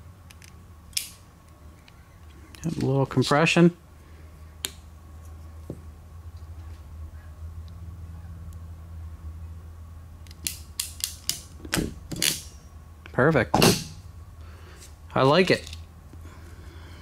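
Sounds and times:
steady low hum: 0.0s - 17.0s.

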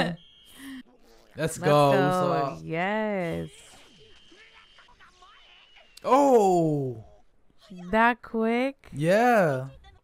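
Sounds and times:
quiet voice-like sounds: 6.0s - 7.0s, 9.0s - 9.7s.

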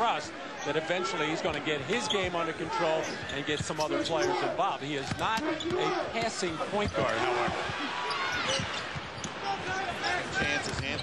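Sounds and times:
crowd noise: 0.0s - 11.0s
basketball bouncing: 5.0s - 7.8s
sneakers squeaking on floor: 5.0s - 11.0s.

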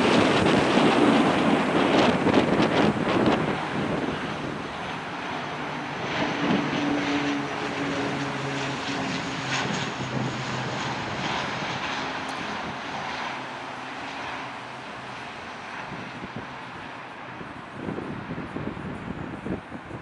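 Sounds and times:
propeller aircraft drone: 0.0s - 20.0s.

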